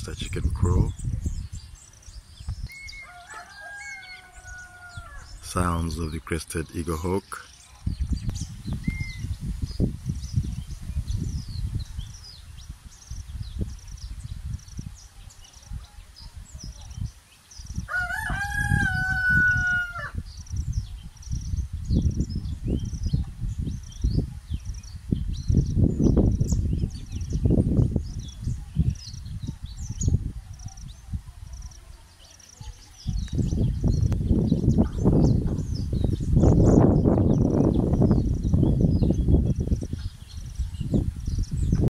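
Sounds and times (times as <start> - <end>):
wind buffeting microphone: 0.0 - 41.9
faint bird chirps: 0.8 - 5.6, 7.3 - 18.5
rooster crowing: 2.9 - 5.4, 17.9 - 20.2.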